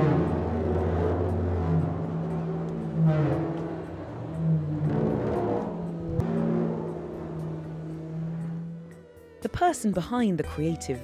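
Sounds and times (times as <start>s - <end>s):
electronic drone music: 0.0s - 9.6s.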